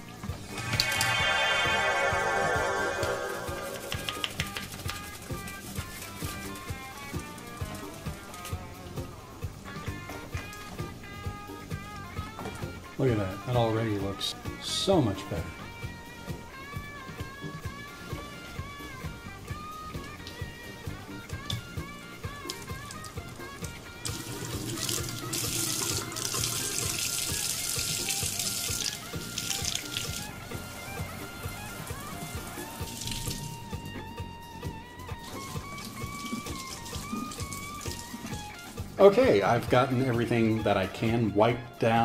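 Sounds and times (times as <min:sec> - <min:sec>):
instrumental background music: 0:00.0 - 0:42.0
plastic parts rinsed by hand: 0:22.4 - 0:30.4, 0:35.2 - 0:38.9
faucet running into sink: 0:24.0 - 0:30.4, 0:32.2 - 0:33.6, 0:35.2 - 0:38.6.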